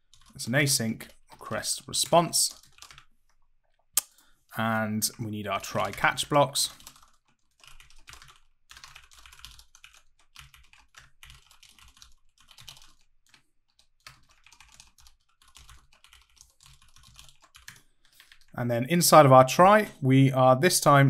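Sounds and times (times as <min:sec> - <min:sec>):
faint computer keyboard typing: 0:00.0 - 0:00.4, 0:01.0 - 0:03.8, 0:05.6 - 0:18.6.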